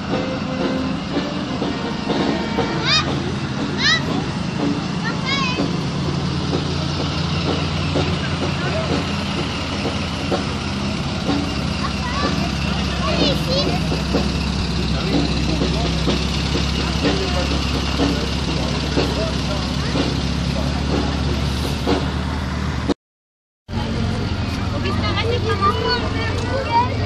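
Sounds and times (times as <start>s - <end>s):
car engines humming: 0.0s - 23.0s, 23.7s - 27.0s
people talking: 0.2s - 22.1s, 23.7s - 27.0s.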